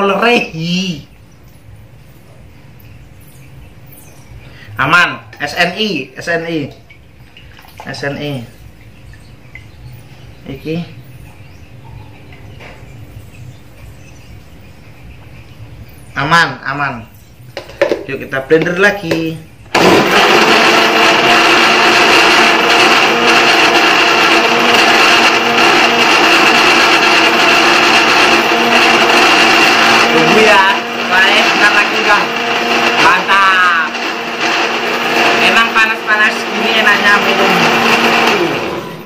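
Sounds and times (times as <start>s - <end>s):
blender running: 19.7s - 39.0s.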